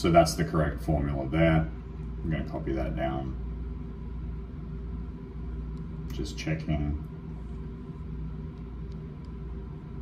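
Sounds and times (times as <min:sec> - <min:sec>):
low background hum and rumble: 0:00.0 - 0:10.0.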